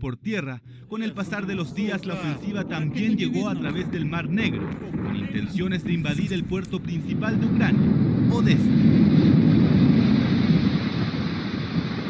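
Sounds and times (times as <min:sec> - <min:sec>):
wind buffeting microphone: 0:01.1 - 0:12.0
surf breaking on beach: 0:01.4 - 0:12.0.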